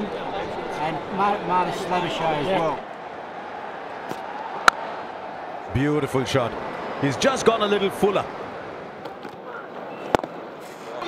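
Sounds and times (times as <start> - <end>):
stadium crowd murmur: 0.0 - 11.0
cricket bat hitting ball: 4.1 - 4.9, 10.1 - 10.4.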